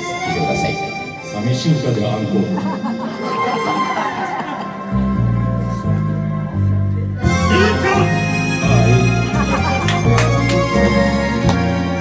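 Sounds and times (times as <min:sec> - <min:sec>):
karaoke backing track over speakers: 0:07.2 - 0:12.0.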